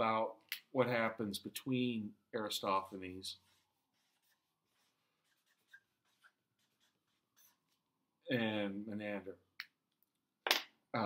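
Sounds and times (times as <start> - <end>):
pen scratching while writing: 3.4 - 7.8.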